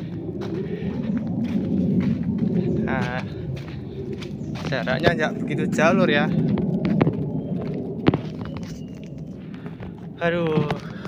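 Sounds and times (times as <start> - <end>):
footsteps on leaf litter: 0.4 - 5.1.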